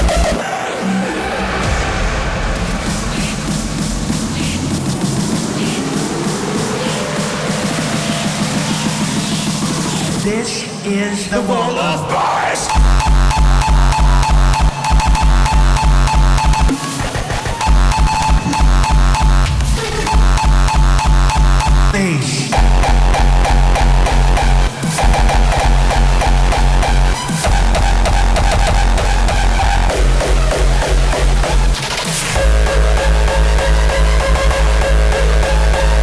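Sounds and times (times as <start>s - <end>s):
synth lines: 12.7s - 22.0s.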